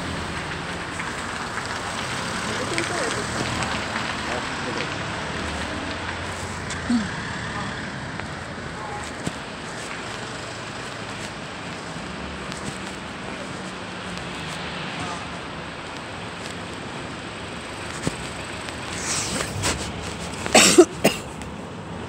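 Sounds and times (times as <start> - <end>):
city street traffic: 0.0 - 22.0.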